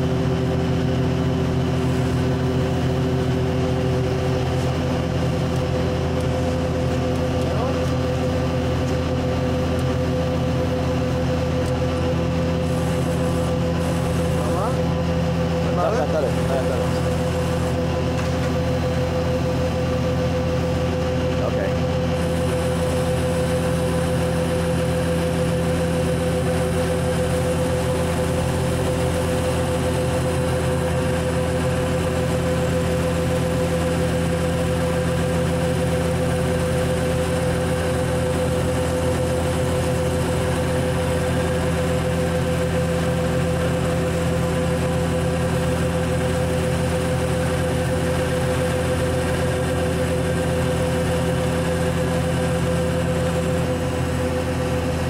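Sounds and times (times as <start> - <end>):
ship deck machinery humming: 0.0 - 55.0.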